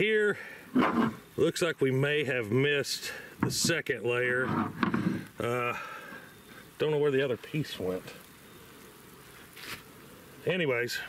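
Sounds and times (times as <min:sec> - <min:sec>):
short soft hiss: 0:08.1 - 0:10.5.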